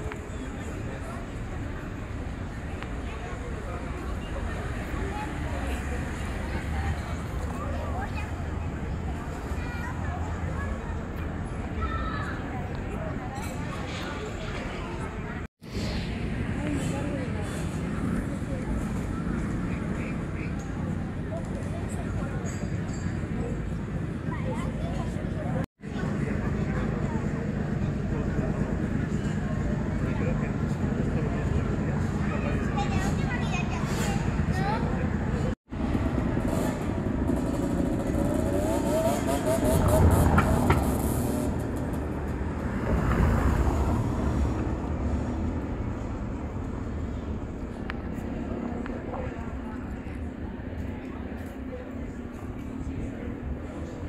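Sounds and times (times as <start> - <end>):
motor vehicle passing: 35.8 - 49.9.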